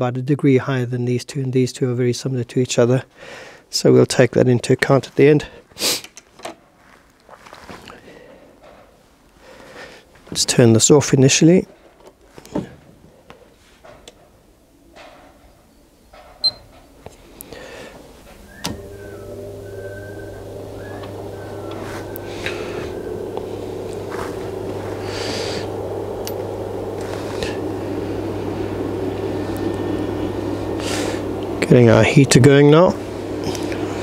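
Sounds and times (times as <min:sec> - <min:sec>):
fan whir: 0:07.5 - 0:34.0
electrical hum: 0:14.4 - 0:34.0.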